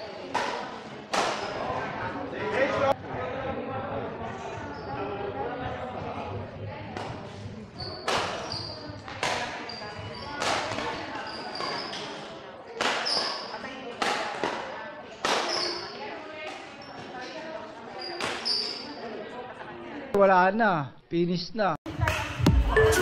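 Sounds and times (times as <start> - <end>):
racket hitting shuttlecock: 0.3 - 1.6, 8.0 - 9.6, 10.4 - 12.1, 12.8 - 15.9
shoe squeaks: 1.3 - 1.7, 4.6 - 5.2, 7.7 - 13.8, 15.3 - 19.2.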